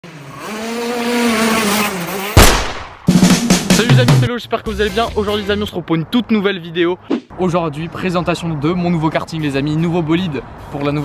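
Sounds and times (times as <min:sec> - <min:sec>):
kart engine at high revs: 0:00.0 - 0:02.5.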